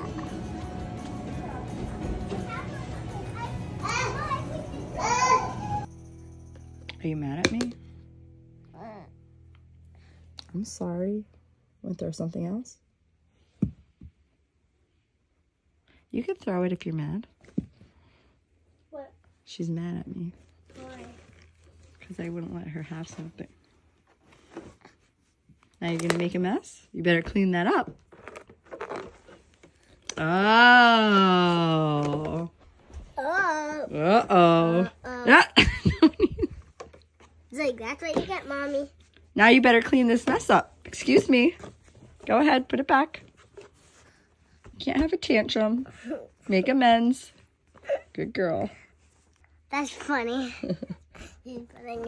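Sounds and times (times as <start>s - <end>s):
background music: 0.0s - 10.6s
toddler babbling: 8.7s - 9.1s, 33.2s - 34.0s.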